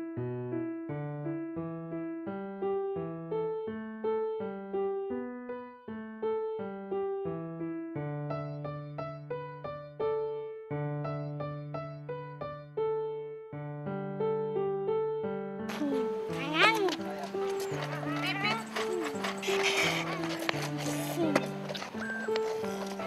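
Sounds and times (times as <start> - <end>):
piano music: 0.0 - 23.0
child's playful calls: 15.7 - 23.0.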